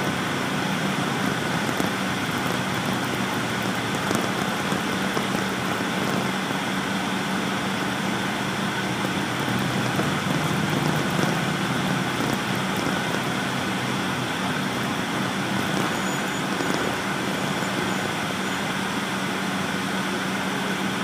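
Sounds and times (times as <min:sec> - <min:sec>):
low engine hum: 0:00.0 - 0:21.0
tyres hissing on wet road: 0:00.0 - 0:21.0.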